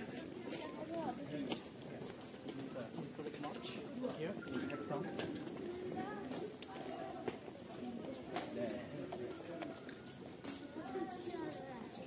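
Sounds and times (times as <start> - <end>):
footsteps shuffling on paved road: 0.0 - 12.0.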